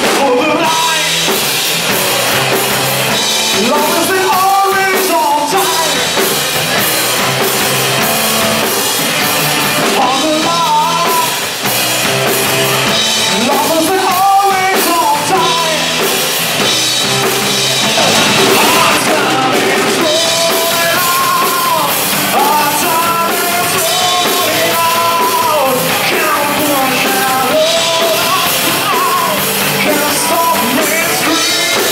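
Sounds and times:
man singing: 0.0 - 1.5, 3.1 - 7.4, 9.1 - 11.7, 12.8 - 16.7, 17.7 - 31.9
live rock band playing: 0.0 - 31.9.

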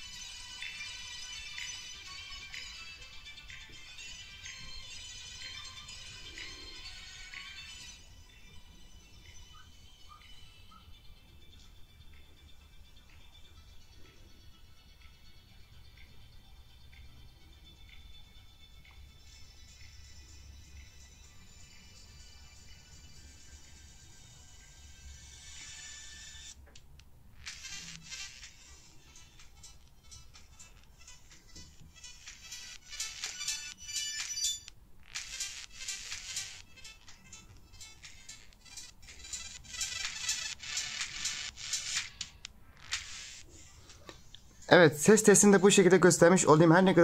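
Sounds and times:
faint music through earbuds: 0.0 - 47.0.

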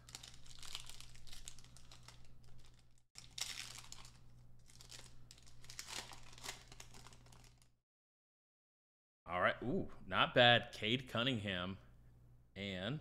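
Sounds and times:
foil wrapper crinkling and tearing: 0.0 - 7.7.

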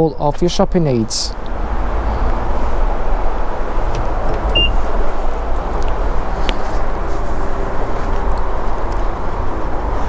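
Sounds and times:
short high beep: 4.6 - 4.8.

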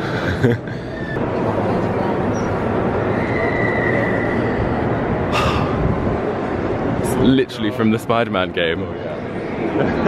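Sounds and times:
busy station concourse rushing noise: 0.0 - 10.0
faint high squeal: 2.3 - 4.7.

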